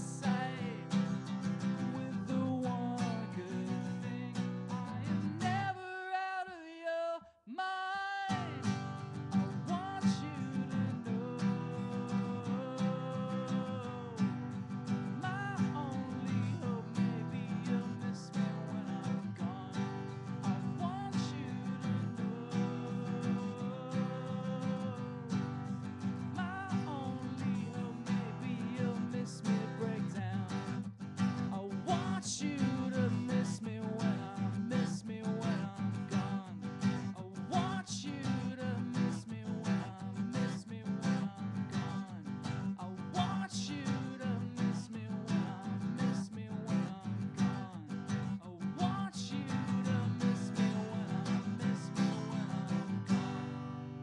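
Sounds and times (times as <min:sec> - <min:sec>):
acoustic guitar strumming: 0:00.0 - 0:05.8, 0:08.2 - 0:54.0.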